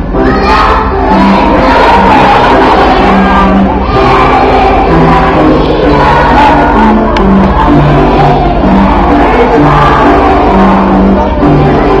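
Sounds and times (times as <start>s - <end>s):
children singing loudly: 0.0s - 12.0s
instrumental accompaniment: 0.0s - 12.0s.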